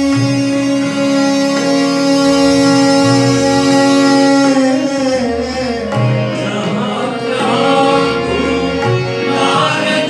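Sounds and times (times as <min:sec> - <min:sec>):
bowed string instrument held notes: 0:00.0 - 0:10.0
harmonium held notes: 0:00.0 - 0:10.0.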